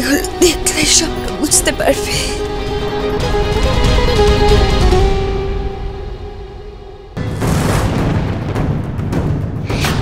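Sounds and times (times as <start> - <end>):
dramatic background score: 0.0 - 10.0.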